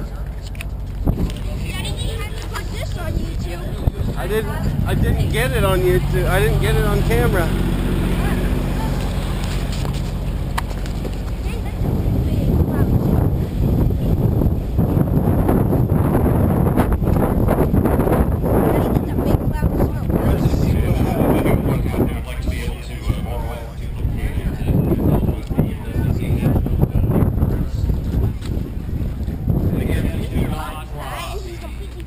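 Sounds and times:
faint crowd voices: 0:00.0 - 0:32.0
wind buffeting microphone: 0:00.0 - 0:32.0.

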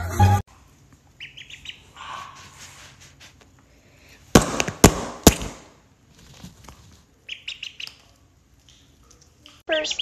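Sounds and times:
duckling peeping: 0:01.1 - 0:02.2, 0:07.2 - 0:10.0
sharp loud bangs: 0:04.3 - 0:05.8.

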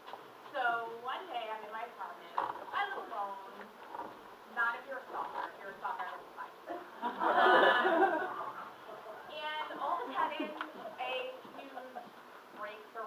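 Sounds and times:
woman speaking: 0:00.5 - 0:03.7, 0:04.5 - 0:06.8, 0:09.2 - 0:13.0.

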